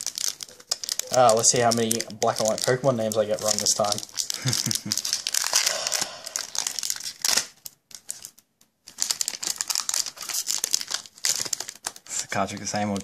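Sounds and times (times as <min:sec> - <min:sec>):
foil wrapper crinkling: 0:00.0 - 0:13.0.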